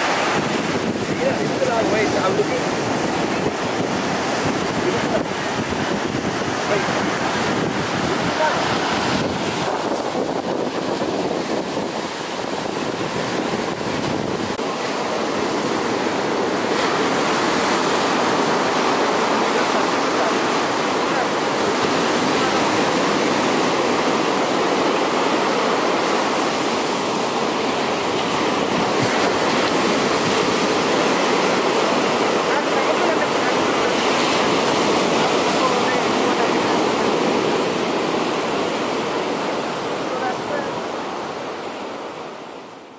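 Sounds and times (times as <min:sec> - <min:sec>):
ocean surf breaking on beach: 0:00.0 - 0:42.9.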